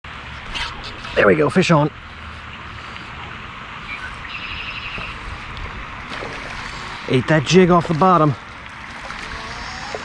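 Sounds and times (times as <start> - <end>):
fishing reel whirring: 9.0 - 10.0.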